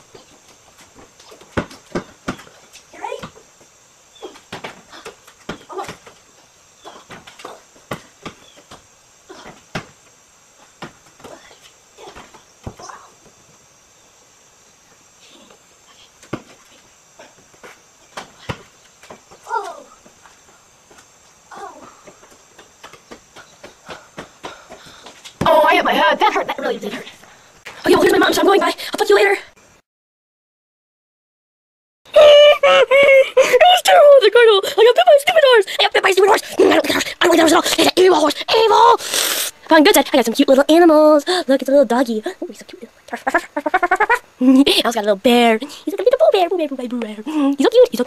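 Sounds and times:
basketball bouncing on concrete: 0:01.0 - 0:03.4.

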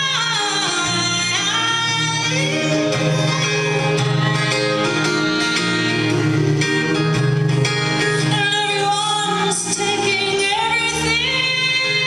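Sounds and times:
woman singing: 0:00.0 - 0:06.8, 0:08.0 - 0:12.0
live band accompaniment: 0:00.0 - 0:12.0.

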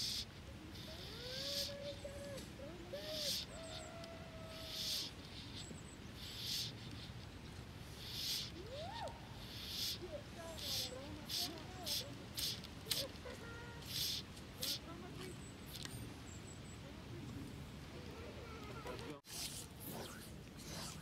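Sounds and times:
soft hissing swishes: 0:00.0 - 0:16.1, 0:18.0 - 0:21.0
distant gliding animal calls: 0:00.0 - 0:16.8.

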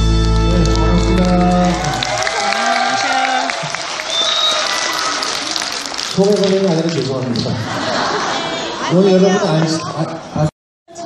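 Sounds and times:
music over pa system: 0:00.0 - 0:02.0
audience clapping: 0:00.0 - 0:08.2.

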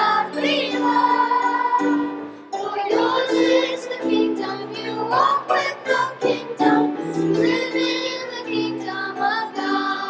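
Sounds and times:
children's choir singing a hymn: 0:00.0 - 0:10.0
piano accompaniment: 0:00.0 - 0:10.0.

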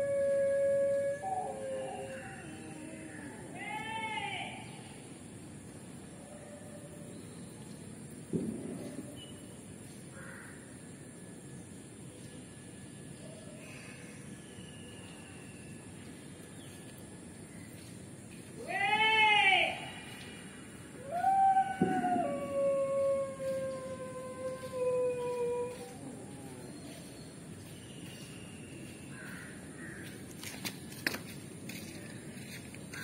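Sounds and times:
outdoor background noise: 0:00.0 - 0:33.0.

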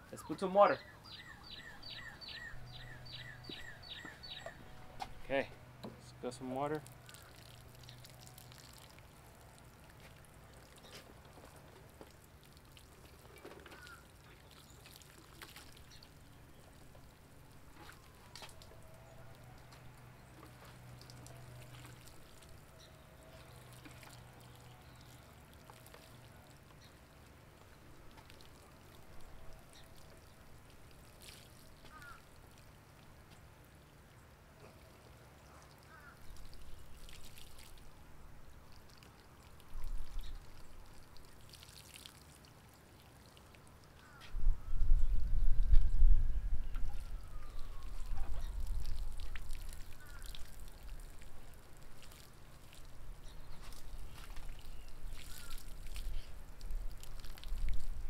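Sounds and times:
water sprinkling onto soil: 0:06.2 - 0:33.7, 0:35.2 - 0:44.2, 0:47.6 - 0:58.0.

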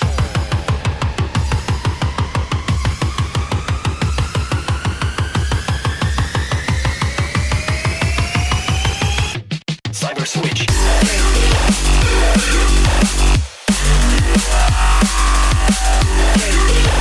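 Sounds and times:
rising synth tone: 0:00.0 - 0:08.9, 0:14.1 - 0:17.0
pulsing dance beat: 0:00.0 - 0:17.0.

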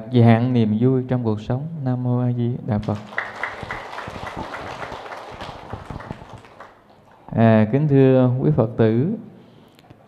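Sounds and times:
crowd applauding: 0:02.8 - 0:07.3.

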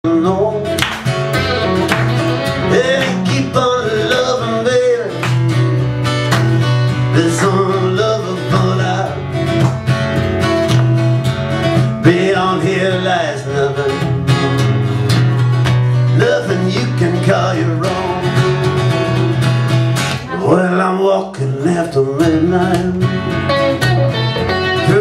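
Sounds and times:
electric guitar: 0:00.1 - 0:25.0
strummed acoustic guitar: 0:00.1 - 0:25.0.

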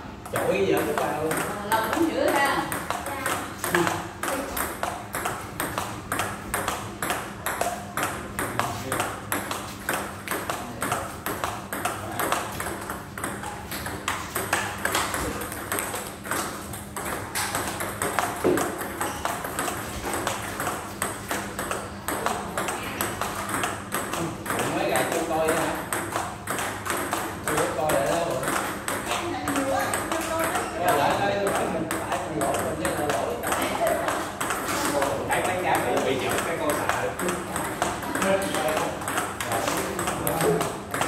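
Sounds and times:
table tennis ball clicking: 0:00.2 - 0:41.0.

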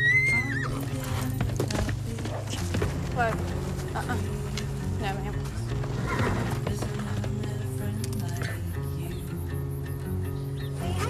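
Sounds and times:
horse whinnying: 0:00.0 - 0:01.4, 0:05.8 - 0:06.6
hoofbeats on dirt: 0:00.0 - 0:09.2
background music: 0:00.0 - 0:11.0.

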